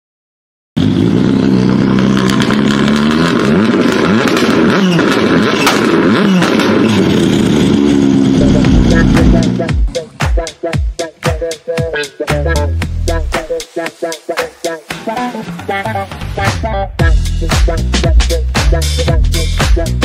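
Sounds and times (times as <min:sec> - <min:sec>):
engine revving sound effects: 0:00.8 - 0:10.3, 0:15.2 - 0:20.0
deep low pulses: 0:07.4 - 0:10.0, 0:17.0 - 0:20.0
music: 0:08.4 - 0:20.0.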